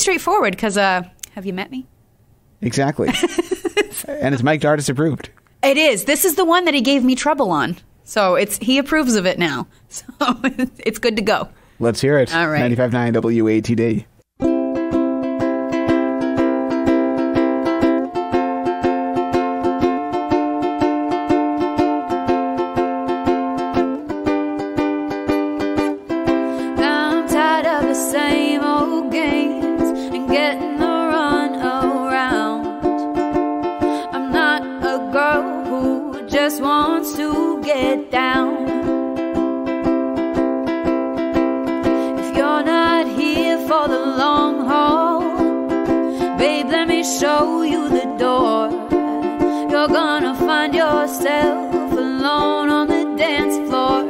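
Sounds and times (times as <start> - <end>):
ukulele strumming: 14.4 - 54.0
woman singing: 26.6 - 33.0, 33.8 - 39.0, 41.8 - 54.0.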